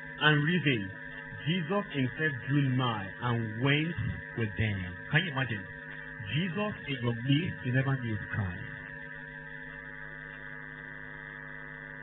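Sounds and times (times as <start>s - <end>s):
electrical hum and buzz: 0.0s - 12.0s.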